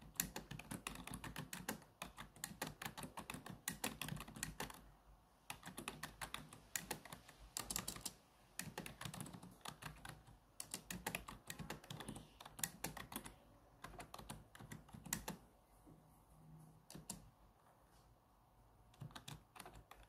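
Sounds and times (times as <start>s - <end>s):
laptop keyboard typing: 0.0s - 4.9s, 5.5s - 15.4s, 16.8s - 17.3s, 18.9s - 20.0s.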